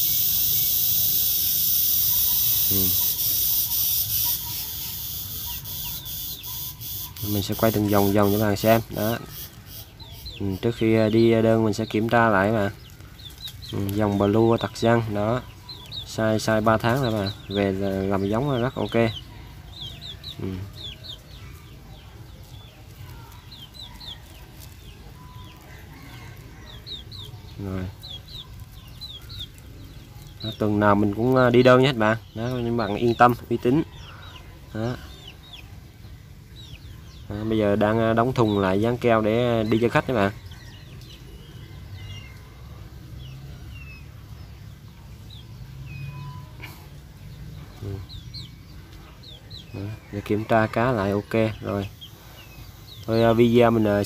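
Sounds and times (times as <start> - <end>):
birds chirping: 0.0 - 54.0.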